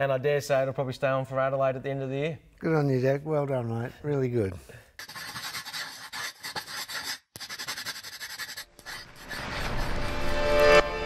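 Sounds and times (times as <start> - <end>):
pencil scratching on paper: 5.0 - 11.0.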